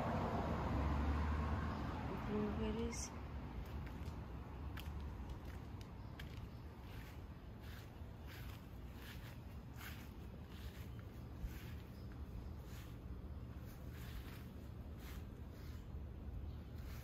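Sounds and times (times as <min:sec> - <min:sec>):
soft footsteps: 0:03.6 - 0:17.0.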